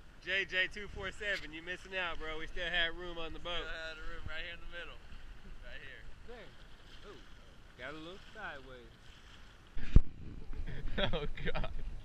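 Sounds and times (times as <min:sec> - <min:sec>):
boat hull slapping a wave: 0:06.4 - 0:10.1.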